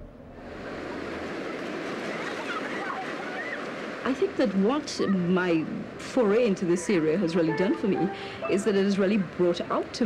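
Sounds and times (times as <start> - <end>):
surf washing over beach: 0.3 - 10.0.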